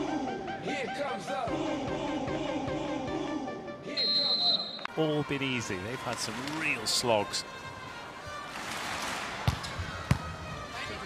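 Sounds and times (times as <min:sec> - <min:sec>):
background music: 0:00.0 - 0:09.2
referee's whistle: 0:03.9 - 0:04.9.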